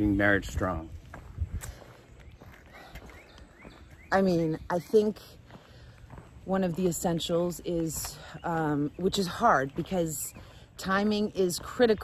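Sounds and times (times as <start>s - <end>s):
wind rumble: 0.0s - 6.5s
footsteps on paved path: 0.0s - 12.0s.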